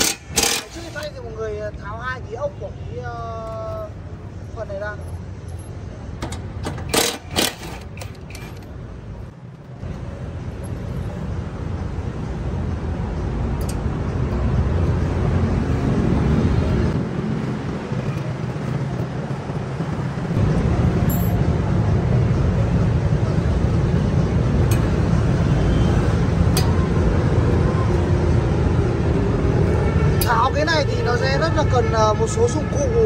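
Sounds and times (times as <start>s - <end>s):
impact wrench rattling: 0.0s - 1.0s, 6.2s - 8.8s.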